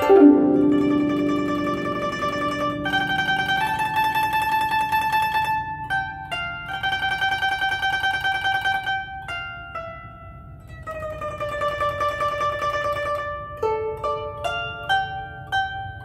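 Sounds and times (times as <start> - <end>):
plucked zither with tremolo: 0.0 - 16.0.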